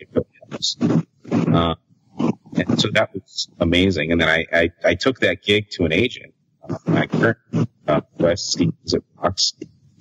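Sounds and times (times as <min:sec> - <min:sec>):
man talking: 0:00.0 - 0:01.8, 0:02.6 - 0:09.6.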